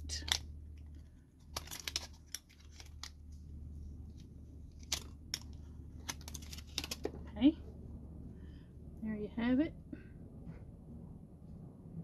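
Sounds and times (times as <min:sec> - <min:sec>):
paper and tape crinkling: 0:00.1 - 0:03.4, 0:04.1 - 0:07.2.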